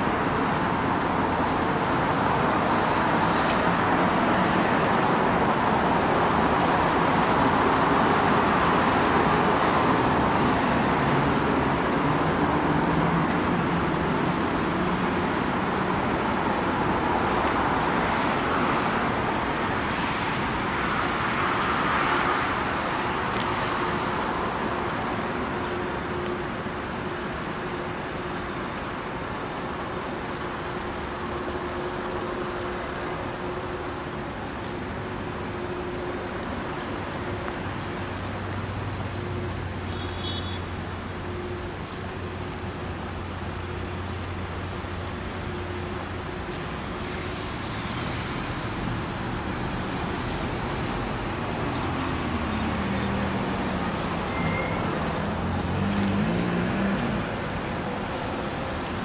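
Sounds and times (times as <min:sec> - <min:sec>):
road traffic passing: 0:00.0 - 0:59.0.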